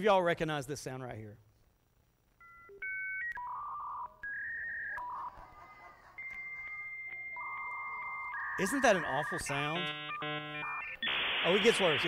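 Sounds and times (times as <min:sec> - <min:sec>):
touch-tone dialing beeps: 0:02.4 - 0:05.3, 0:06.2 - 0:11.2.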